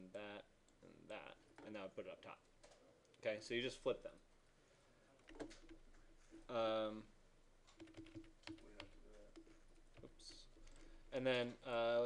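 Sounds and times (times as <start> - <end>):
mouse and keyboard clicks: 5.2 - 6.5, 7.7 - 10.8.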